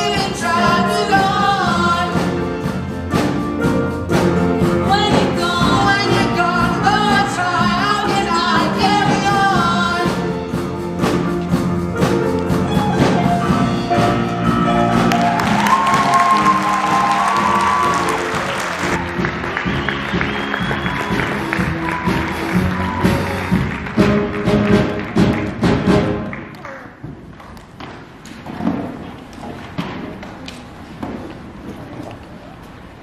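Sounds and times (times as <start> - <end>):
pit band playing music: 0.0 - 26.4.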